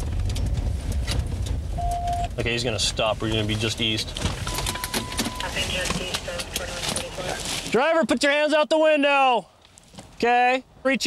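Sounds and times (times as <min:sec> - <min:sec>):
car engine rumble: 0:00.0 - 0:07.8
thin steady beep: 0:01.8 - 0:02.3, 0:04.4 - 0:05.7.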